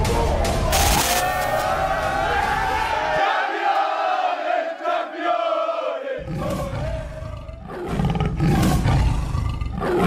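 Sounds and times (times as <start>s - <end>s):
big cat growling and roaring: 6.2s - 10.0s.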